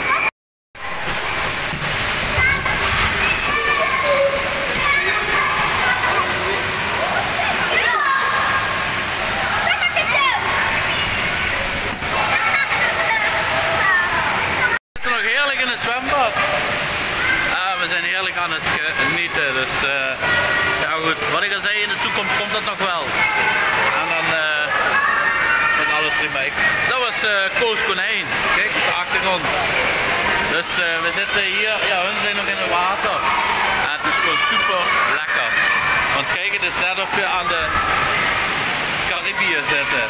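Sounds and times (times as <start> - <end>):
water rushing and splashing: 0.0 - 40.0.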